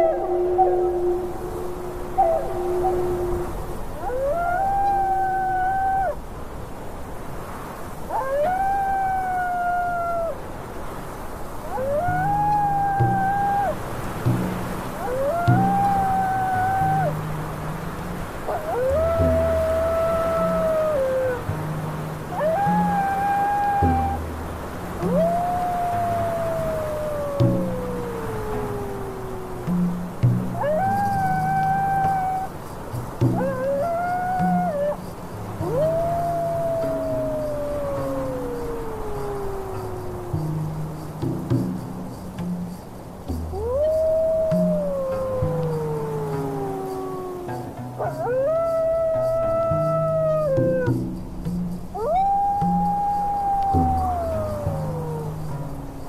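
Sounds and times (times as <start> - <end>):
slow low instrumental notes: 0.0 - 4.5, 11.9 - 56.0
wolves howling: 0.0 - 6.4, 7.9 - 41.1, 43.5 - 51.1, 51.9 - 56.0.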